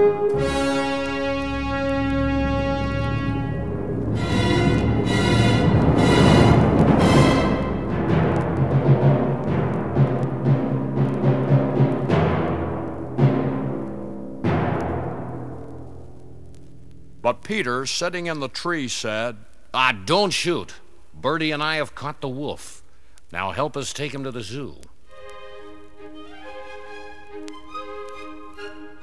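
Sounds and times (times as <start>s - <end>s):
orchestra playing loud chords: 0.0s - 15.4s
timpani and bass drum strokes: 0.0s - 17.2s.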